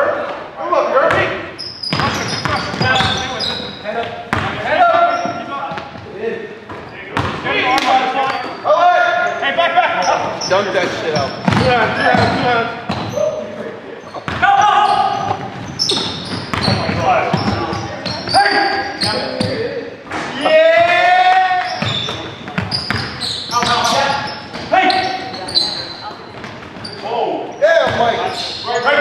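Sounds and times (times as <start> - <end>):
shoes squeaking: 1.4 - 20.4, 21.6 - 29.0
basketball bouncing on hardwood: 11.4 - 13.1, 15.3 - 17.7
players shouting: 14.4 - 15.5.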